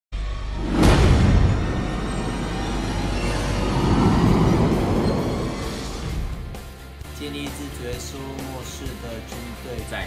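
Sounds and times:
cinematic intro music: 0.1s - 10.0s
dense noisy hit: 0.2s - 7.0s.

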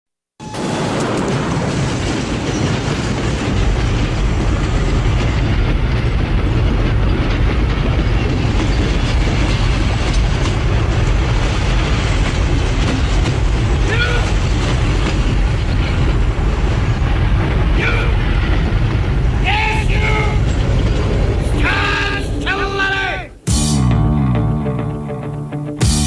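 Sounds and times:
loud deep rumble: 0.6s - 22.5s.

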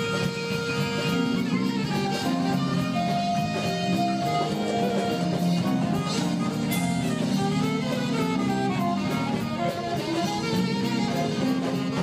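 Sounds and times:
jazz band playing: 0.0s - 12.0s
saxophone melody: 0.0s - 12.0s.

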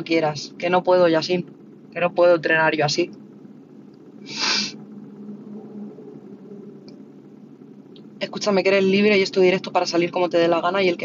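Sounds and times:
steady low hum: 0.0s - 11.0s
sharp breath through nose: 4.2s - 4.8s.

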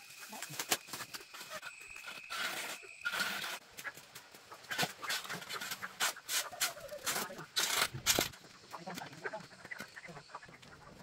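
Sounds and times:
chickens clucking: 3.8s - 7.6s, 8.3s - 11.0s.

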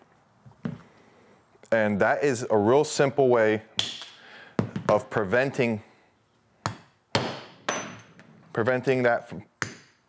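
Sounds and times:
hammer striking rivet: 6.7s - 8.0s.

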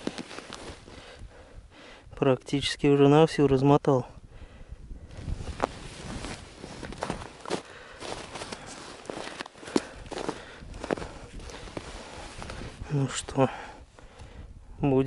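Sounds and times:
footsteps crunching on snow: 0.0s - 1.1s, 5.2s - 12.9s.

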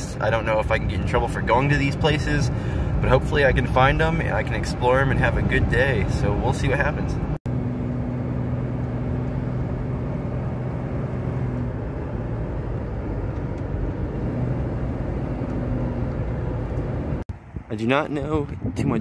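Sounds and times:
car engine hum: 0.0s - 18.5s
tyre and road noise: 0.0s - 19.0s.

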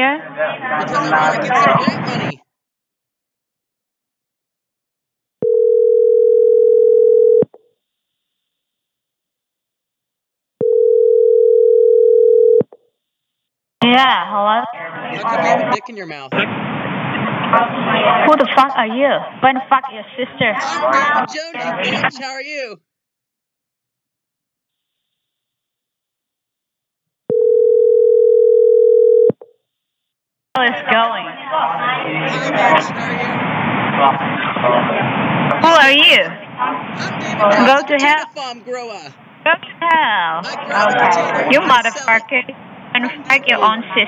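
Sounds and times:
telephone ringback tone: 5.4s - 7.4s, 10.6s - 12.7s, 27.3s - 29.4s.

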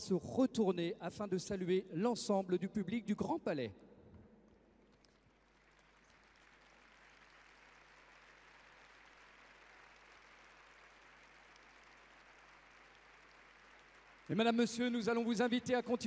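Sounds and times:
crowd applause: 5.1s - 15.3s.

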